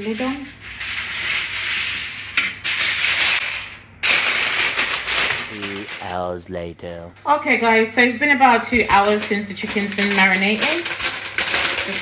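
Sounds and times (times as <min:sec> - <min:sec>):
aluminium foil crinkling: 0:00.0 - 0:06.2, 0:08.6 - 0:12.0
sharp foil crackle: 0:00.0 - 0:06.2, 0:08.6 - 0:12.0.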